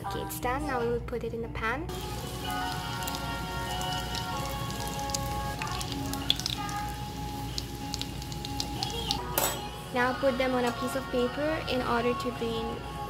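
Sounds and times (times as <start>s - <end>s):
background music: 0.0s - 13.0s
bread sizzling in butter: 1.9s - 9.2s.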